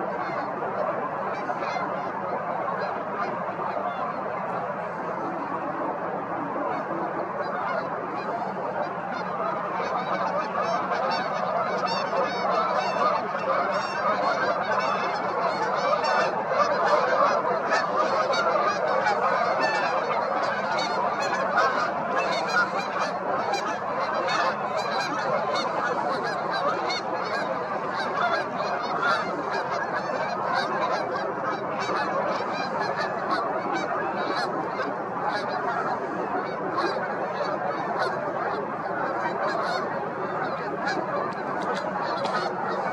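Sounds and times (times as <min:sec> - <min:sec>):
chorus of waterbirds calling: 0:00.0 - 0:42.9.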